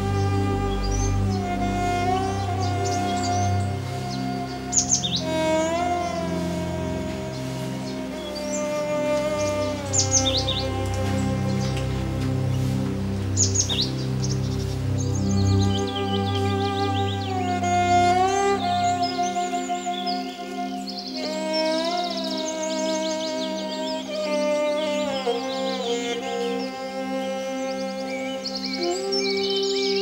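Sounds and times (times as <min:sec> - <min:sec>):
bird chirping: 0:00.0 - 0:30.0
music of gliding held tones: 0:00.0 - 0:30.0.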